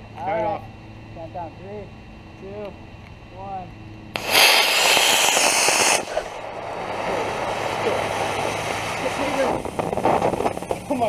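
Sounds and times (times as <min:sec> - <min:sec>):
quieter steady rushing hiss: 0:00.0 - 0:11.0
rocket motor loud hiss: 0:04.1 - 0:11.0.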